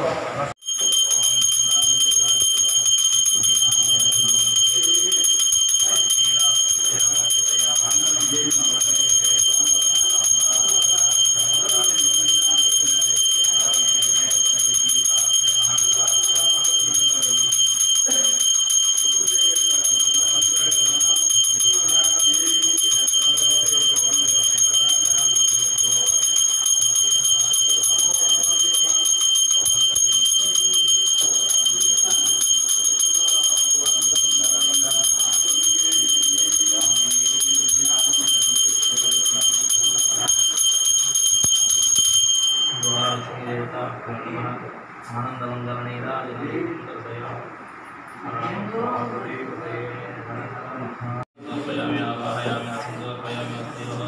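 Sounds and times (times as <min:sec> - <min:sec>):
hand bell ringing: 0:00.6 - 0:43.5.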